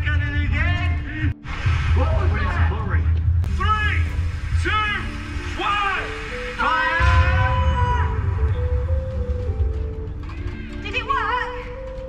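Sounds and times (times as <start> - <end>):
background music of held notes: 0.0 - 12.0.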